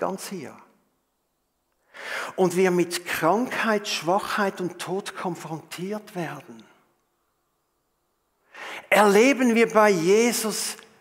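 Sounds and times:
man speaking: 0:00.0 - 0:00.7, 0:02.3 - 0:06.8, 0:08.8 - 0:10.9
man drawing a quick breath: 0:01.8 - 0:02.3.

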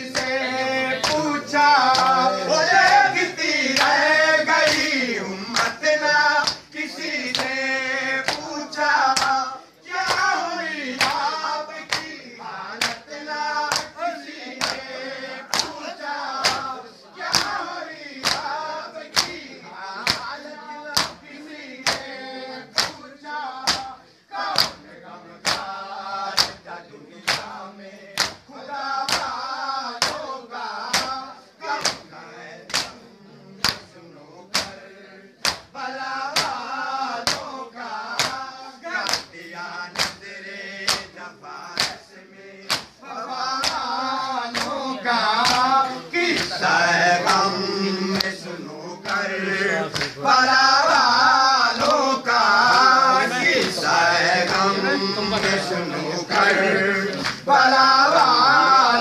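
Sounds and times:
men chanting in unison: 0:00.0 - 0:59.0.

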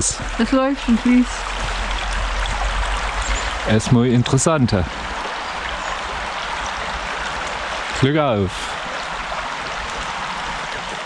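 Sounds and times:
brook flowing over stones: 0:00.0 - 0:11.0.

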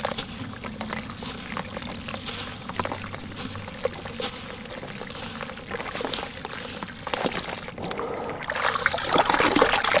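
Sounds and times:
gritty crumbling crackle: 0:00.0 - 0:08.1
water trickling and sloshing: 0:00.0 - 0:10.0.

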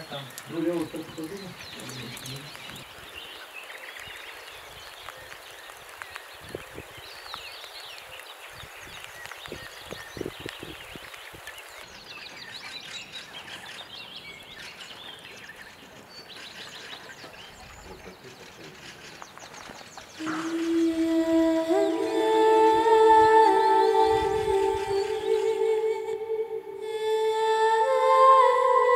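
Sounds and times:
songbirds chirping: 0:00.0 - 0:28.9.

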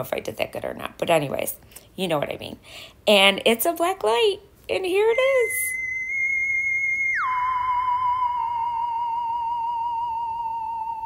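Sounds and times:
eerie theremin tone: 0:05.1 - 0:11.0.

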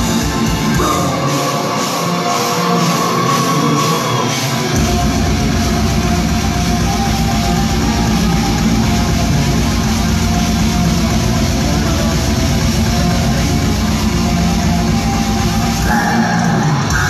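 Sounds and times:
heavy metal band playing live: 0:00.0 - 0:17.0.

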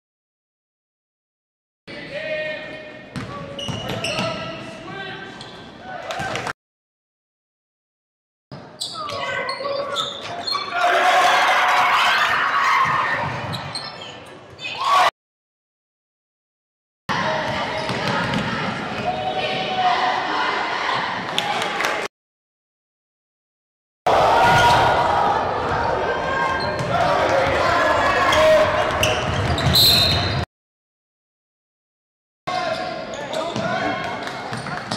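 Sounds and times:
sneakers squeaking: 0:03.1 - 0:06.4, 0:08.5 - 0:10.9, 0:12.6 - 0:14.9, 0:17.4 - 0:19.7, 0:26.4 - 0:27.0, 0:28.2 - 0:30.4, 0:34.5 - 0:34.9.

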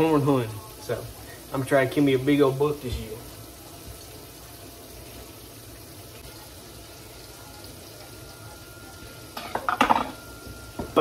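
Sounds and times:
meat sizzling in a skillet: 0:00.0 - 0:11.0.

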